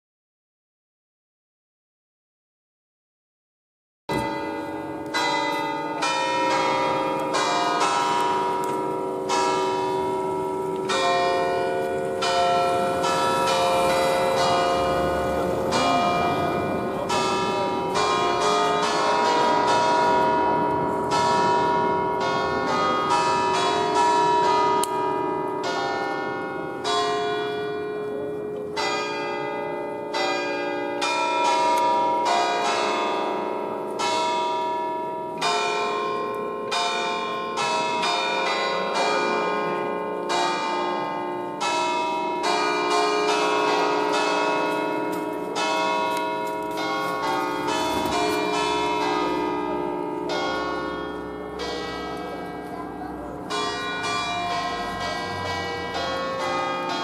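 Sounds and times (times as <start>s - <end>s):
church bells playing a melody: 4.1s - 57.0s.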